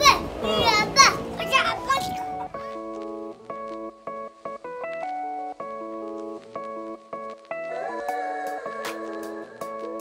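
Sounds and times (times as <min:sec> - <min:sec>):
child calling out: 0:00.0 - 0:02.4
background music: 0:00.0 - 0:10.0.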